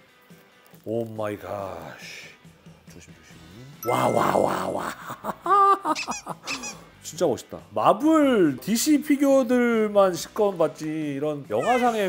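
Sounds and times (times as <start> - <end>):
man squealing with delight: 11.5 - 12.0.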